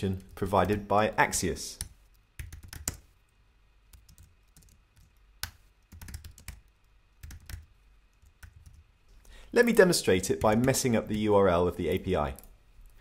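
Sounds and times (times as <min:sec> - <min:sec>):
computer keyboard typing: 0:01.8 - 0:03.1, 0:03.9 - 0:08.8, 0:10.4 - 0:10.8.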